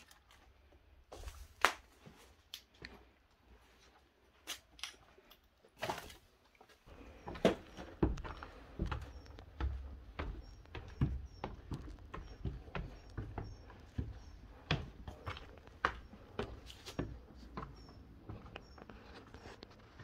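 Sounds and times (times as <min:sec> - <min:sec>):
footsteps on stairs: 0:06.9 - 0:20.0.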